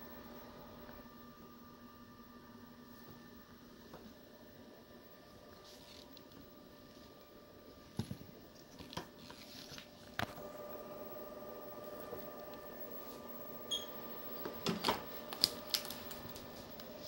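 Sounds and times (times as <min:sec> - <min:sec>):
electrical hum from equipment: 0:00.0 - 0:17.0.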